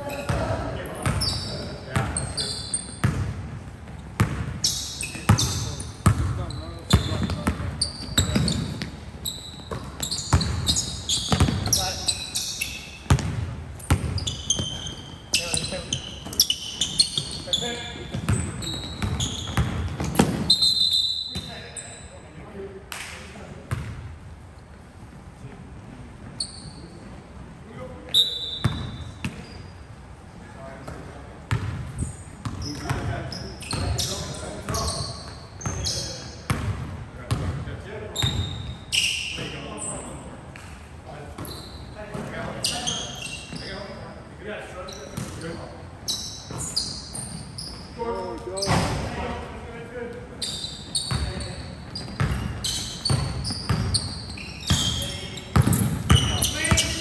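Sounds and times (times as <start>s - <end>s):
sneakers squeaking: 0.0s - 22.6s, 23.7s - 24.0s, 26.2s - 27.2s, 28.0s - 30.0s, 30.6s - 57.0s
basketball bouncing on hardwood: 11.3s - 11.7s, 13.1s - 14.2s, 55.5s - 57.0s.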